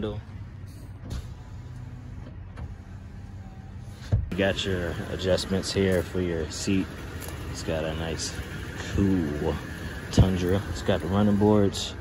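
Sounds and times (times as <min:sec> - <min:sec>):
power window motor humming: 0:01.0 - 0:05.8.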